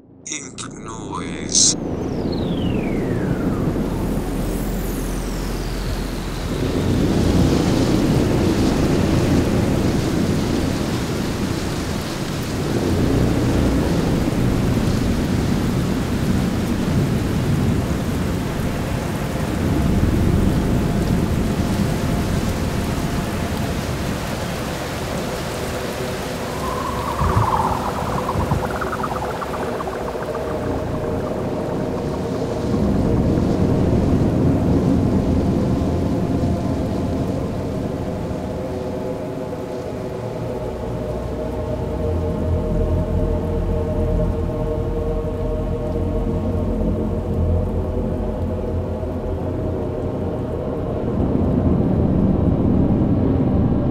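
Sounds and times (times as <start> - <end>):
held drone tones: 0.3 - 7.9, 25.6 - 34.7
rain-like hiss: 2.8 - 50.9
deep thunder-like rumbles: 26.1 - 35.2
short high warble: 26.2 - 33.3.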